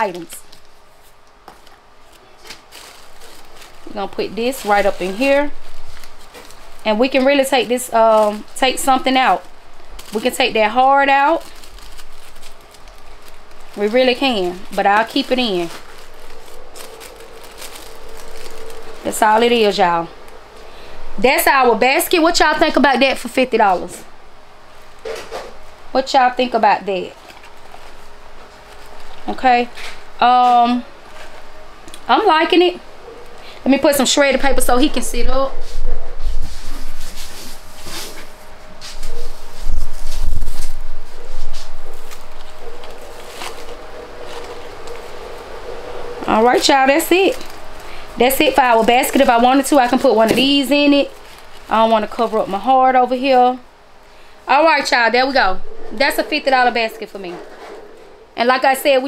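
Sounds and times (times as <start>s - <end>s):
paper and plastic crinkling: 0.0s - 23.9s, 26.9s - 30.0s, 35.7s - 53.6s
faint steady hum: 0.0s - 59.0s.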